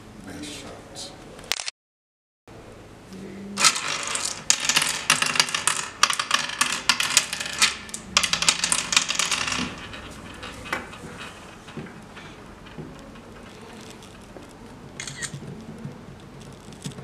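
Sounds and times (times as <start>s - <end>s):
seeds clicking on wooden board: 12.6s - 17.0s.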